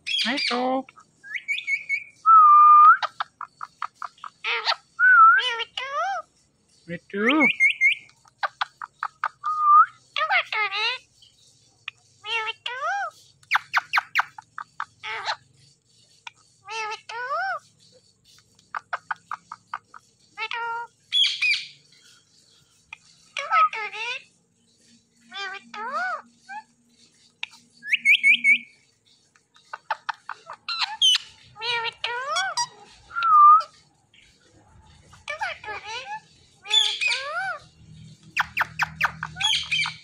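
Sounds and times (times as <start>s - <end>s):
parakeet chirping: 0.0s - 40.0s.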